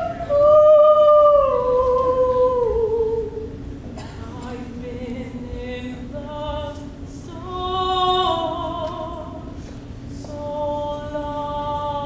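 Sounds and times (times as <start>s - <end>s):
woman singing long note: 0.0s - 3.5s.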